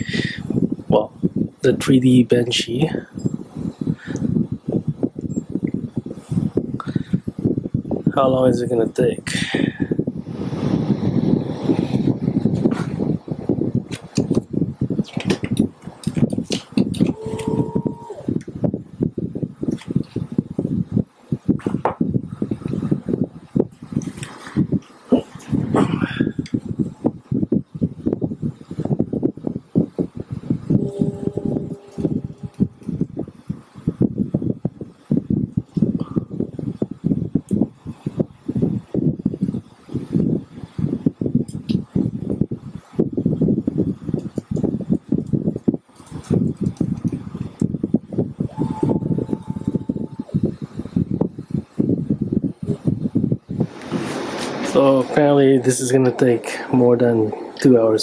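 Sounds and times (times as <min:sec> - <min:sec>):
motor whining tones: 0:17.1 - 0:18.3.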